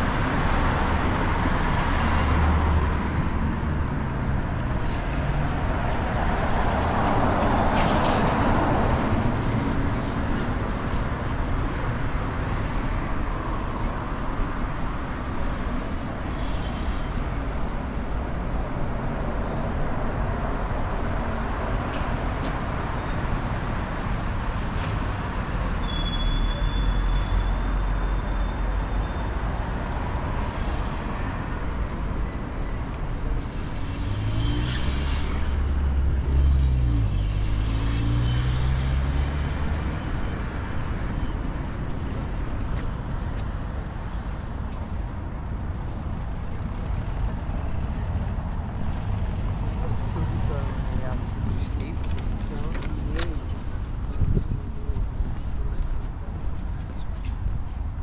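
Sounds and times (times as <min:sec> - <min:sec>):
low rumble of passing cars: 0:27.4 - 0:58.0
vehicle accelerating past: 0:33.8 - 0:40.0.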